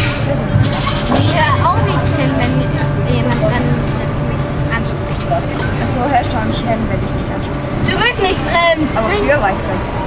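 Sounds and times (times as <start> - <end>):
ride machinery humming: 0.0 - 10.0.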